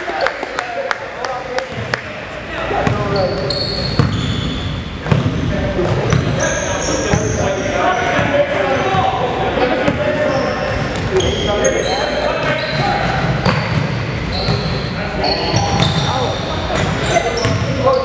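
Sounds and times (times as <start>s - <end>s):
indistinct voices in echoing hall: 0.0s - 18.0s
sneakers squeaking: 2.7s - 18.0s
basketball bouncing on court: 3.9s - 6.4s, 16.8s - 17.9s.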